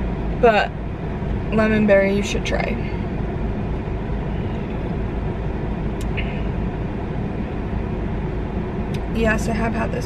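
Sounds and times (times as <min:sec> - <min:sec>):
car idling heard from inside: 0:00.0 - 0:10.0.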